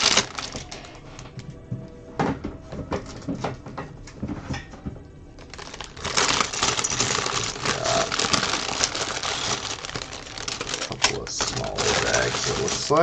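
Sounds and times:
plastic bag crinkling: 0:00.0 - 0:01.1, 0:05.4 - 0:13.0
plastic bricks clicking and rattling: 0:05.4 - 0:13.0.

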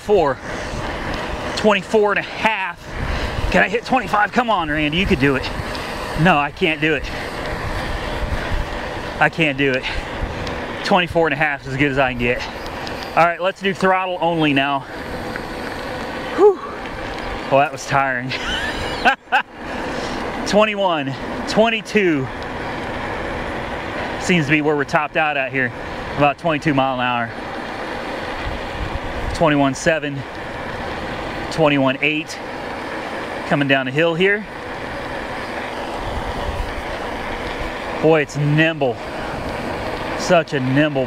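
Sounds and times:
wind and tyre noise: 0:00.0 - 0:41.0
wind rushing: 0:00.1 - 0:13.3, 0:34.8 - 0:38.0
person exhaling whew: 0:16.3 - 0:16.8.

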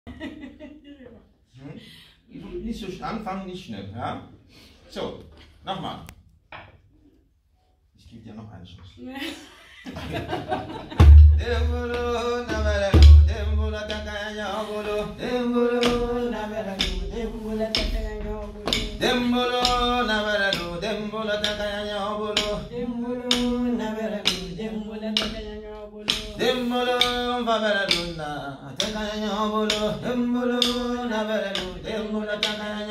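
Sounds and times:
man singing: 0:11.2 - 0:32.9.

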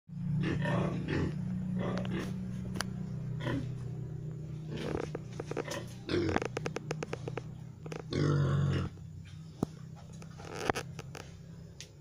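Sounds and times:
pig grunting: 0:00.2 - 0:02.5, 0:03.4 - 0:03.8, 0:04.6 - 0:09.1.

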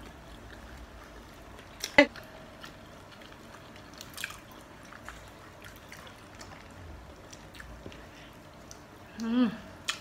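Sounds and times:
chewing: 0:00.0 - 0:10.0.

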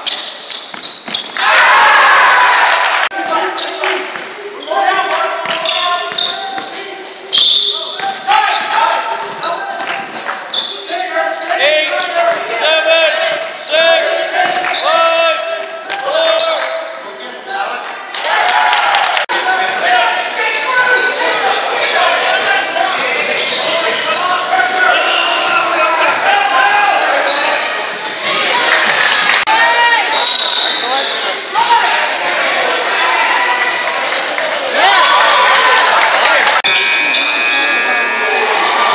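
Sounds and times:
sneakers squeaking: 0:00.0 - 0:01.5, 0:03.2 - 0:18.0, 0:19.4 - 0:22.0, 0:22.9 - 0:27.8, 0:32.5 - 0:34.7, 0:36.6 - 0:38.9.

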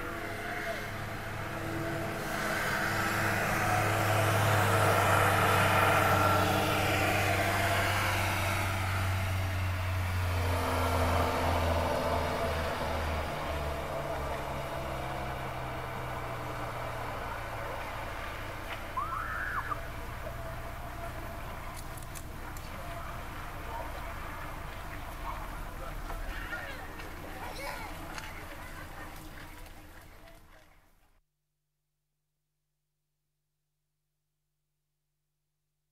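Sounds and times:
vehicle engine drone passing: 0:00.0 - 0:28.1
short high call: 0:19.0 - 0:19.9.

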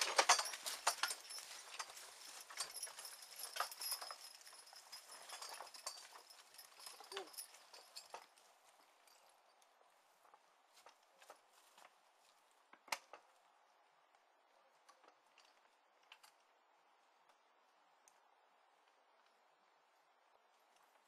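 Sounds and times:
plow clicks and knocks: 0:00.0 - 0:07.2
horse hoofbeats: 0:00.0 - 0:09.2.

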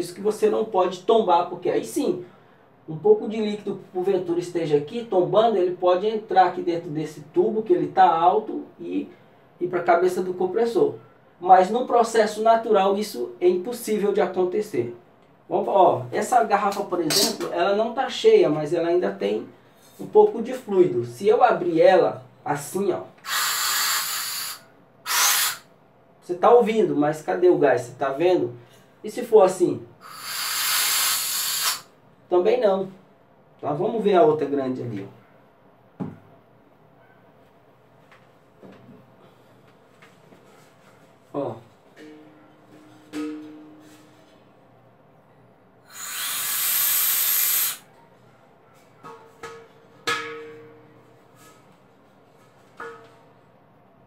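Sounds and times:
refrigerant gas hissing from valve: 0:23.2 - 0:25.6, 0:30.0 - 0:31.9, 0:45.9 - 0:47.8.

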